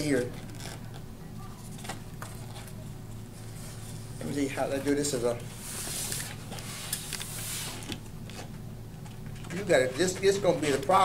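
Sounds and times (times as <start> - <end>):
air hissing out of balloon: 5.6 - 7.9.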